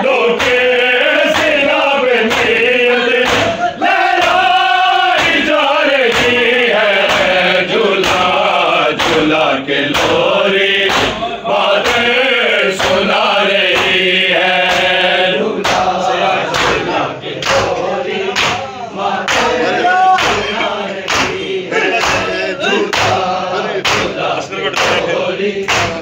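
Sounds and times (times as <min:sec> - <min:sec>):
men chanting lament in unison: 0:00.0 - 0:26.0.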